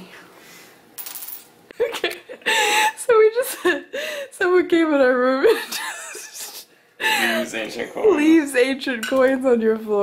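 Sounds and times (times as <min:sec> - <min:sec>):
coin dropped on stone: 0:01.0 - 0:01.5
laughter: 0:01.7 - 0:03.9, 0:05.4 - 0:06.6.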